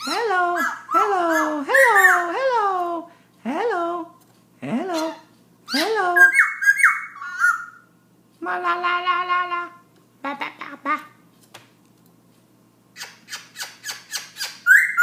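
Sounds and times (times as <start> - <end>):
bird singing rich notes: 5.0 - 7.9, 13.0 - 15.0.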